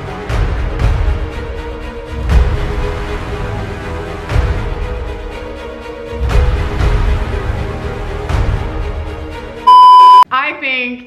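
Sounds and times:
background music: 0.0 - 11.0
electronic bleep: 9.7 - 10.2.

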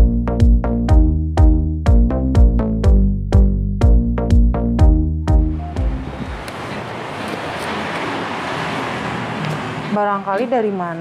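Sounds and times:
electronic music beat: 0.0 - 6.5
steady rushing noise: 5.3 - 10.0.

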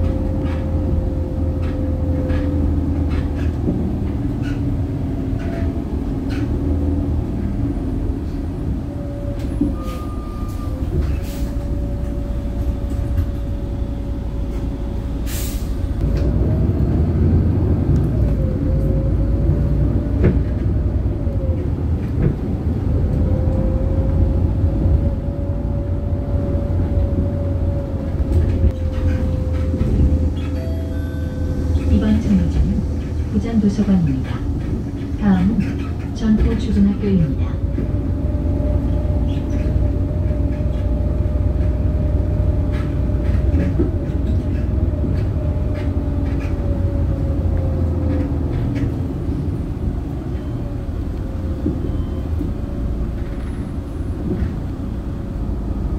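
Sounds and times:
bus engine and road rumble: 0.0 - 55.9.

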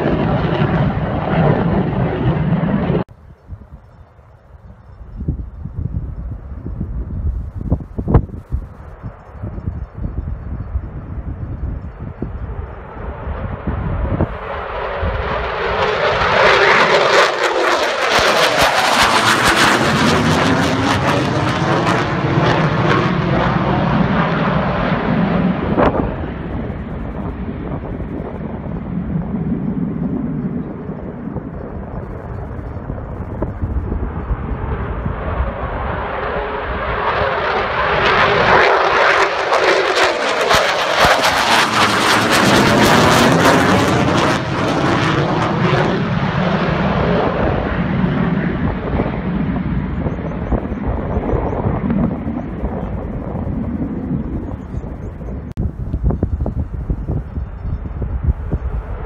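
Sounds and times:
distant jet rumble: 0.0 - 59.0
jet engines passing overhead: 0.0 - 59.0.

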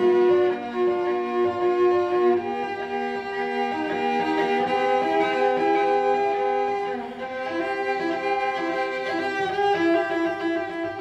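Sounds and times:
bowed cello sustained notes: 0.0 - 11.0.

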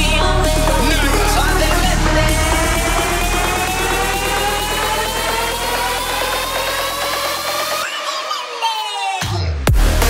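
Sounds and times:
synth riser: 0.0 - 9.2
fast repeating dance beat: 0.0 - 10.0.

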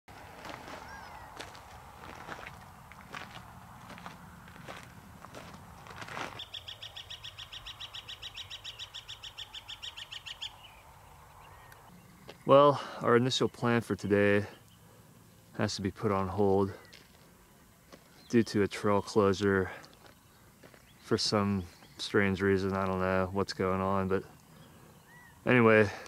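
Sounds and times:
footsteps crunching on gravel: 0.1 - 6.5, 12.2 - 12.5, 16.7 - 18.4, 19.6 - 23.3
faint bird chirps: 0.8 - 1.4, 6.4 - 12.6, 24.2 - 25.5
bird rapid trill: 6.3 - 12.2.

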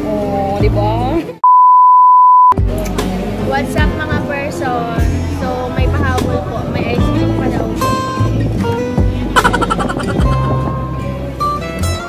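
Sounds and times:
electronic beep: 1.4 - 2.6
background music: 2.6 - 12.0.

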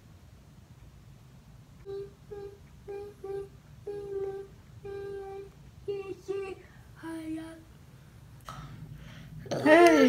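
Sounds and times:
person humming a tune: 1.8 - 7.6.

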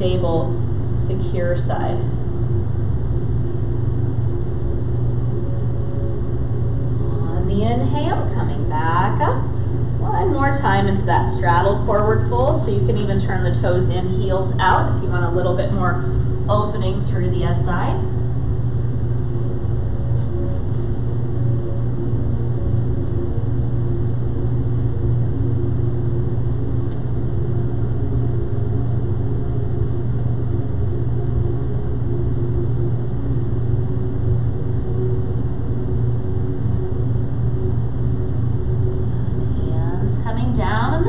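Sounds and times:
faint sustained tones: 0.0 - 41.0
steady low hum: 0.0 - 41.0.

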